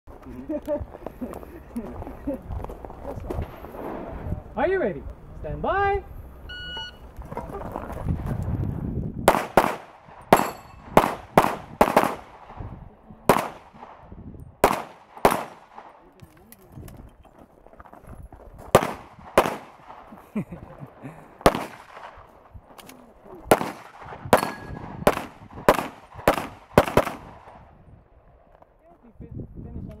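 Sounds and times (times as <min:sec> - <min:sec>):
shot timer beep: 0:06.5 - 0:07.0
pistol shots: 0:09.3 - 0:12.6, 0:13.3 - 0:14.0, 0:14.6 - 0:16.0, 0:18.7 - 0:20.2, 0:21.4 - 0:22.2, 0:23.5 - 0:27.6.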